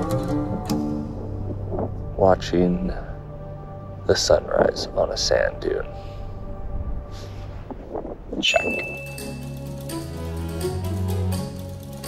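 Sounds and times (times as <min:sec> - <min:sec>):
plucked string notes: 0:00.0 - 0:02.6
low held tone: 0:08.4 - 0:09.6.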